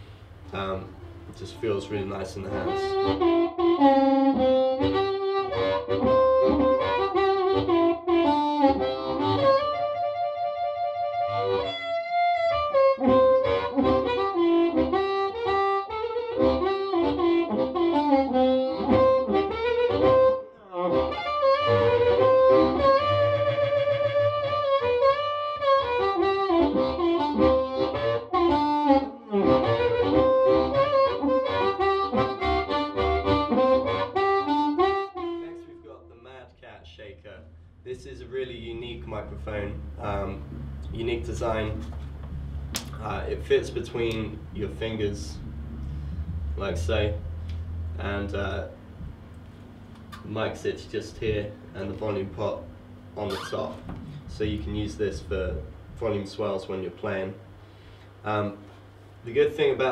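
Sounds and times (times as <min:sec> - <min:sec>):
amplified blues harmonica: 0:00.0 - 0:36.3, 0:37.5 - 0:59.9.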